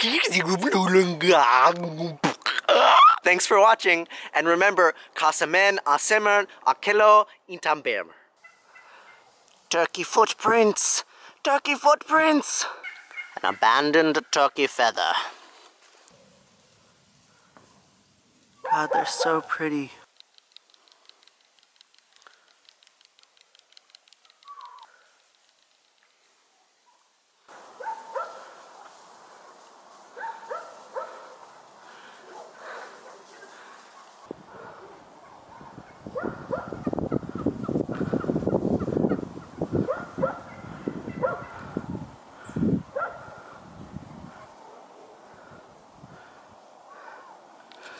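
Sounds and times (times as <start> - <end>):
wild turkeys calling: 2.5 - 3.3, 8.4 - 9.4, 12.6 - 14.4, 20.6 - 25.4, 26.8 - 41.8
turkey call: 2.7 - 3.2, 8.4 - 9.3, 12.7 - 13.4, 24.2 - 25.1
faint quick ticking: 20.0 - 26.2.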